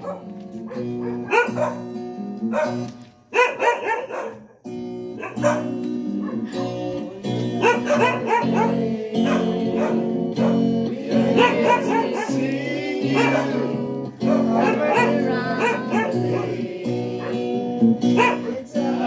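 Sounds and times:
instrumental accompaniment: 0.0s - 3.3s, 4.7s - 19.0s
group singing: 6.4s - 19.0s.

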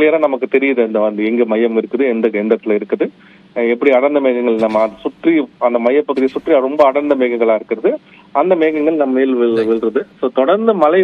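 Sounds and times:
man talking over telephone: 3.6s - 11.0s.

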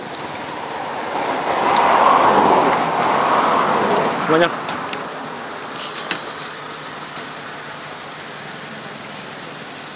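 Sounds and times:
vehicle passing close by: 0.2s - 5.8s.

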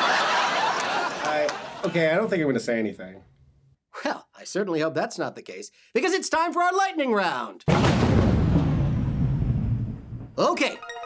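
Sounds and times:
thunder rumble: 7.7s - 10.4s.

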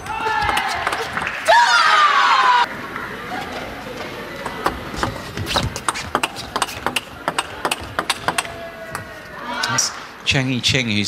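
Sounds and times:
table tennis ball ticking: 5.8s - 8.5s.

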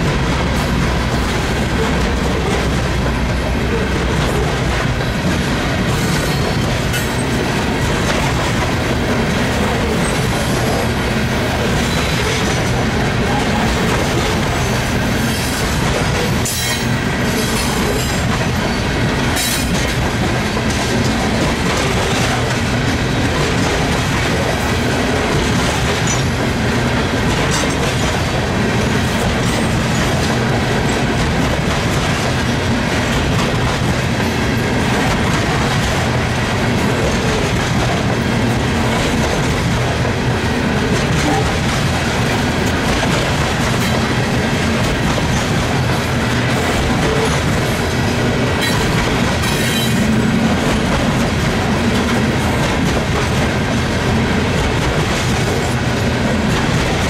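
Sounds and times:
clickety-clack at rail joints: 0.0s - 57.0s
freight train rumbling past: 0.0s - 57.0s.

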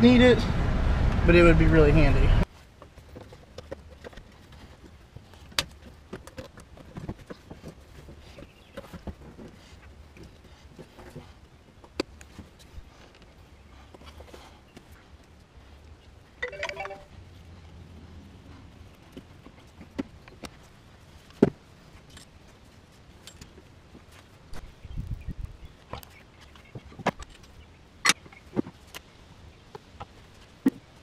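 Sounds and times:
hands handling engine parts: 2.5s - 16.9s
short high-pitched sound: 16.4s - 17.1s.

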